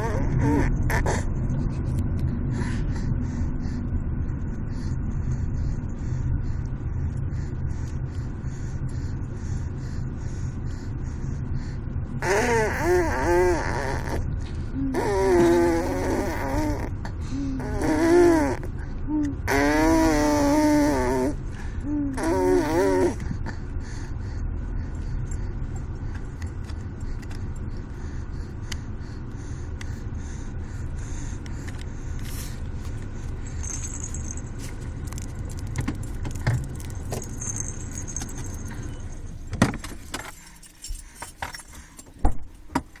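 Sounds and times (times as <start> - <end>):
baby buzzing lips: 0.0 - 1.3, 12.2 - 23.3
low steady rumble: 0.0 - 43.0
baby toy jingling and rattling: 33.3 - 39.5.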